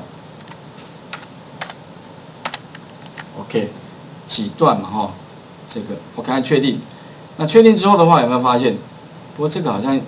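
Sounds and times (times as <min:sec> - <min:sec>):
keyboard keystrokes: 0:00.4 - 0:01.8, 0:02.4 - 0:03.3.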